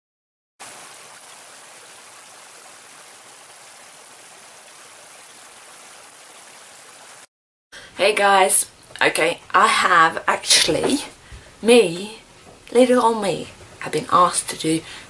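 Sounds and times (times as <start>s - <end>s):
stream splashing over rocks: 0.6s - 7.3s.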